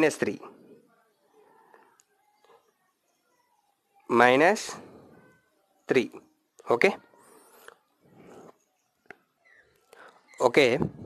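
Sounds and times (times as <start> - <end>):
soft breathy noises: 0.4 - 3.7, 4.6 - 5.8, 7.0 - 11.0.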